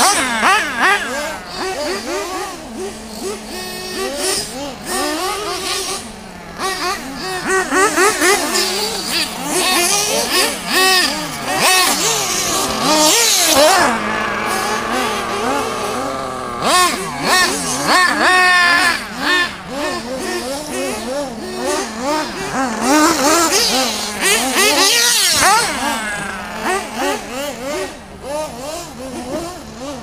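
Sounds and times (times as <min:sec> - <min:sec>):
rc car motors whining: 0:00.0 - 0:30.0.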